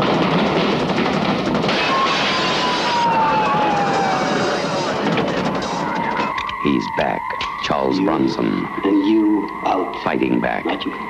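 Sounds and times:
loud dense roar: 0.0 - 9.5.

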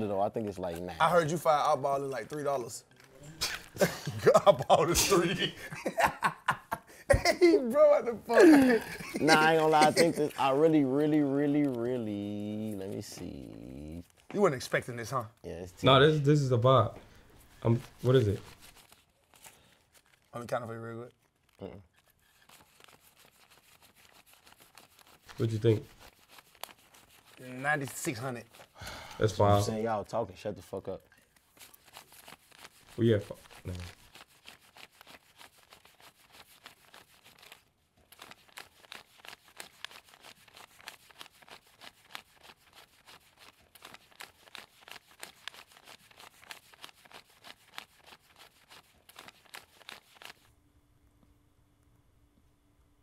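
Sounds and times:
banknotes flicked while counting: 31.6 - 50.5.

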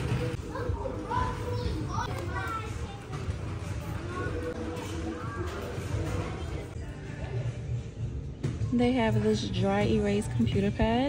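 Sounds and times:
in-store background music: 0.0 - 11.0
indistinct voices of shoppers: 0.0 - 11.0.

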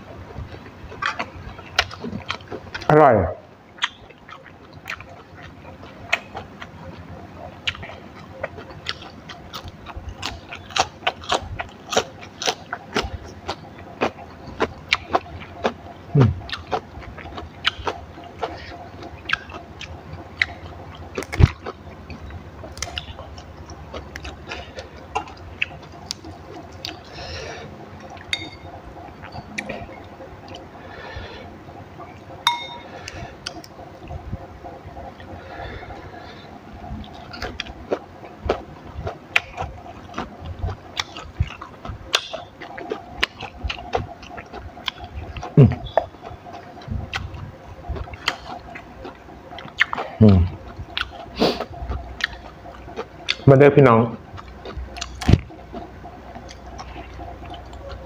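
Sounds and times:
crunchy chewing: 0.2 - 2.9, 3.7 - 58.0.

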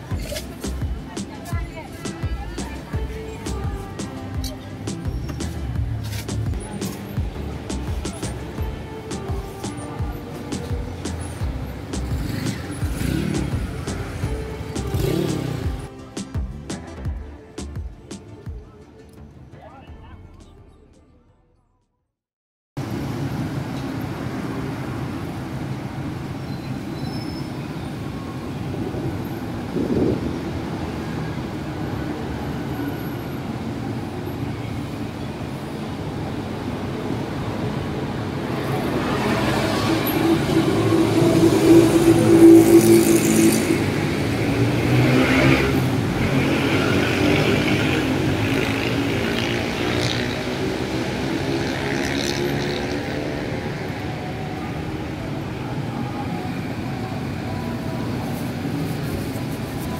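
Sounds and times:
road traffic noise: 0.0 - 21.7, 22.8 - 59.9
vehicle engine passing close: 38.7 - 53.9.

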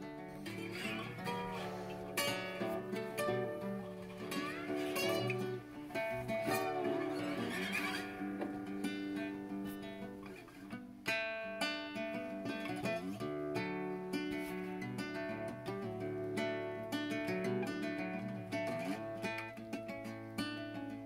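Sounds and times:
slide acoustic guitar fingerpicking: 0.0 - 21.0.

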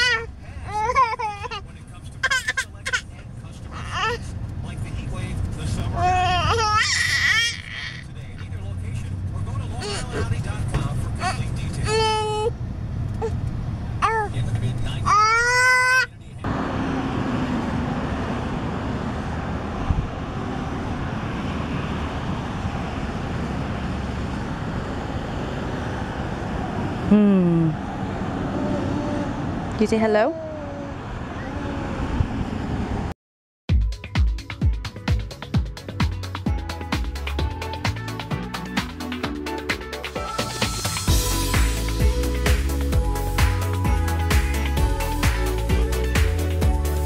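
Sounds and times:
baby squealing and babbling: 0.0 - 1.6, 2.2 - 3.0, 3.7 - 4.2, 6.0 - 8.2, 11.2 - 12.5, 14.0 - 14.4, 15.0 - 16.1, 28.5 - 29.4, 30.3 - 32.2
road noise inside a car: 0.0 - 33.2.

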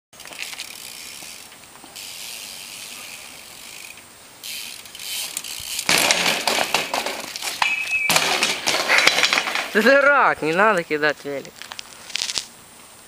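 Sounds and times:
bike clattering on pavement: 0.2 - 10.8
bike rolling on asphalt: 0.2 - 12.5.

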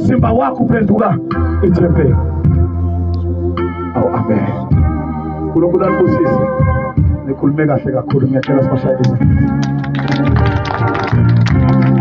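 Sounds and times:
electronic organ chords: 0.0 - 12.0.

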